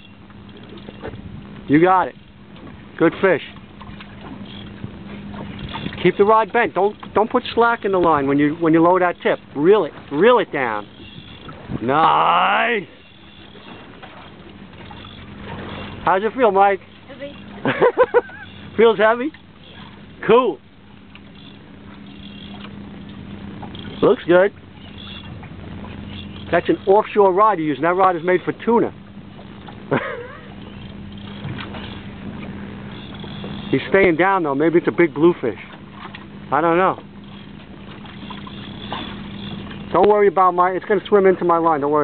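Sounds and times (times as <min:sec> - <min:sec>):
steady low hum: 0:00.0 - 0:42.0
wind and water noise: 0:00.0 - 0:42.0.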